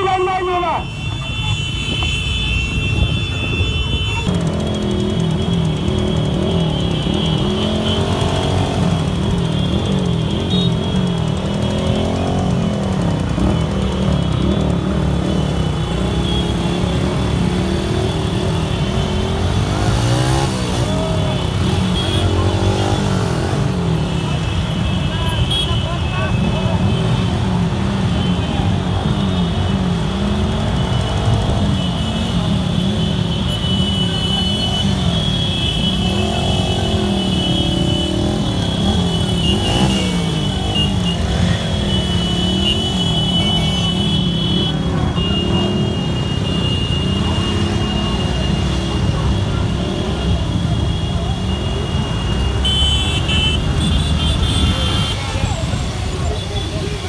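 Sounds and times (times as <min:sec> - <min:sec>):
voices: 0:00.0 - 0:02.0, 0:18.2 - 0:57.0
motorcycle engines revving: 0:00.7 - 0:57.0.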